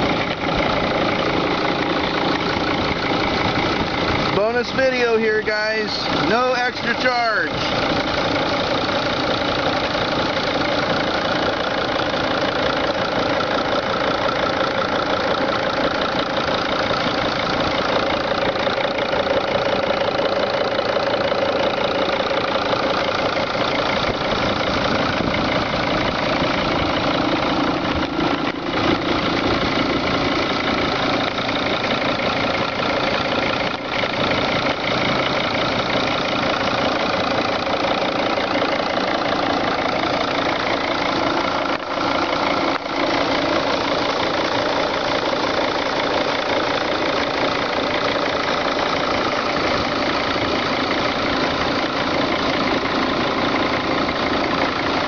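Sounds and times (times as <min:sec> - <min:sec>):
diesel engine idling: 0:00.0 - 0:55.0.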